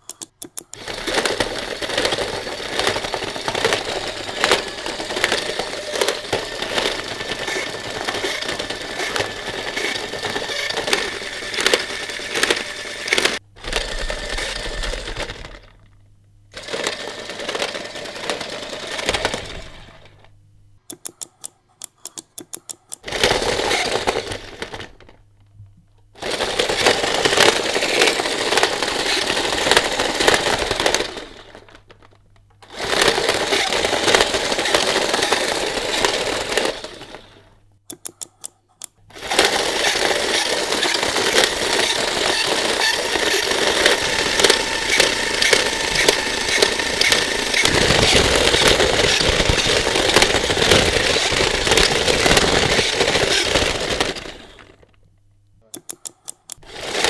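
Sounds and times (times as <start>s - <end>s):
toy motor rattling: 0.0s - 15.8s, 16.5s - 20.2s, 20.9s - 25.2s, 26.2s - 54.9s, 55.8s - 57.0s.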